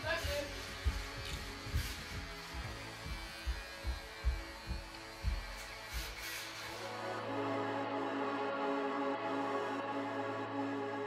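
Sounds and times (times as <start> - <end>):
electric hair clippers buzzing: 0.0 - 7.7.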